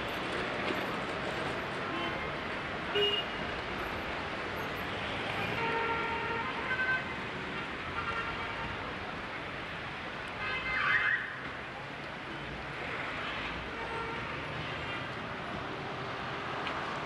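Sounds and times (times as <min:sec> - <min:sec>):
urban background noise: 0:00.0 - 0:17.0.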